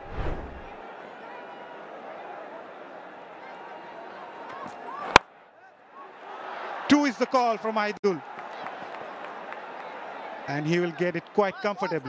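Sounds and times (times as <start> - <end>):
broadcast transition whoosh: 0.0 - 0.8
stadium crowd murmur: 0.5 - 12.0.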